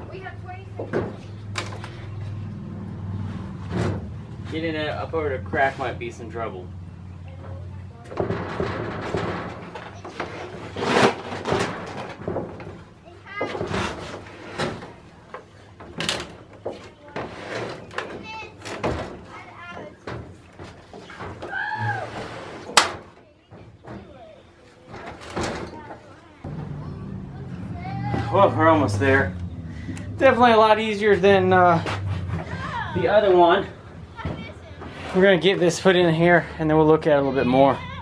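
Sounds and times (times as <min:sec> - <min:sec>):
wood and iron scraping on metal: 0:00.2 - 0:38.0.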